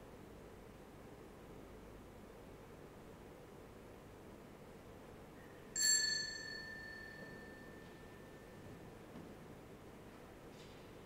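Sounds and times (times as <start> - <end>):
small bell ringing: 5.7 - 8.6.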